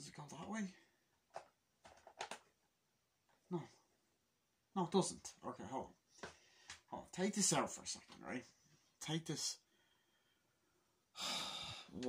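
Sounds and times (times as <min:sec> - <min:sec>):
man sighing: 0:11.2 - 0:12.0.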